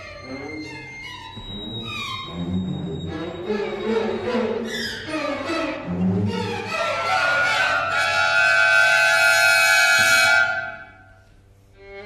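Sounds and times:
violin and orchestra high note: 6.3s - 11.2s.

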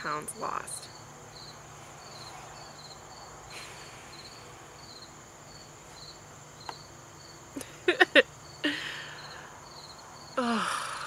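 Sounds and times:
crickets chirping: 0.0s - 11.0s
insect trill: 0.0s - 11.0s
person breathy vocal sounds: 10.4s - 11.0s.

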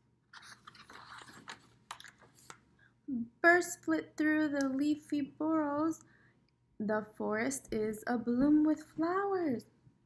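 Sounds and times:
book page turning: 0.3s - 2.7s.

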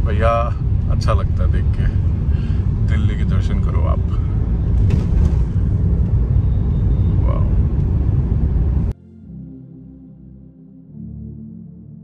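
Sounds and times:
car road and engine rumble: 0.0s - 9.0s.

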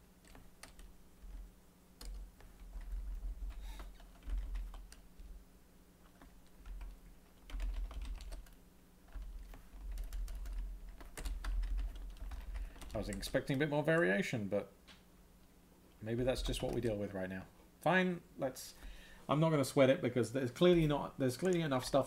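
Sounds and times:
faint electrical hum: 0.0s - 22.0s
keyboard typing: 0.2s - 1.4s, 2.0s - 5.2s, 6.0s - 13.4s.

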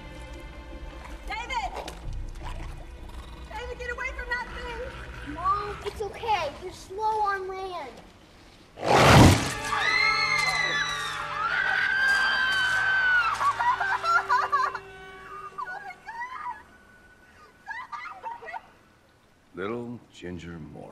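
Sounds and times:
film score music: 0.0s - 7.3s, 9.0s - 19.0s
loud crash: 8.8s - 9.8s
shrill screaming: 9.4s - 18.9s.

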